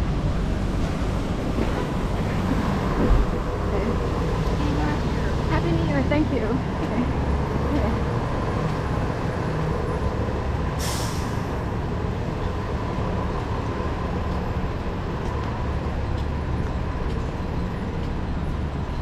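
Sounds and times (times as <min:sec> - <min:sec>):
bus engine rumbling: 0:00.0 - 0:19.0
air brakes hissing: 0:10.8 - 0:11.6.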